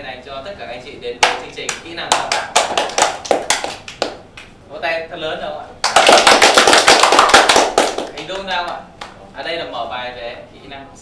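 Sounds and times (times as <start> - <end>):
people clapping: 1.2 - 4.5, 5.8 - 9.2.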